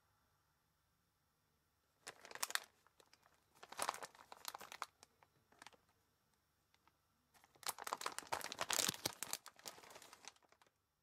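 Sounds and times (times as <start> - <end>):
plastic bag crinkling: 2.0 - 5.9, 6.7 - 10.8.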